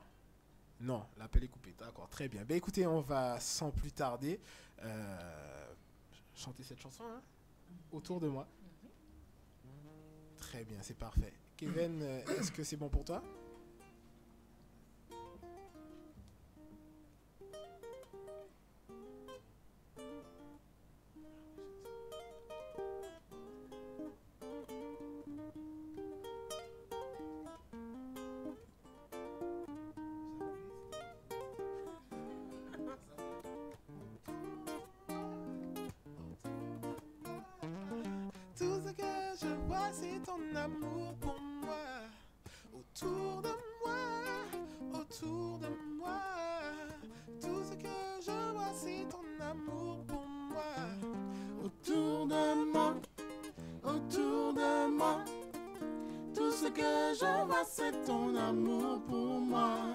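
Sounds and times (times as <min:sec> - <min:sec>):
picked guitar melody: 0:09.0 - 0:10.4, 0:13.0 - 0:42.0, 0:43.0 - 0:59.9.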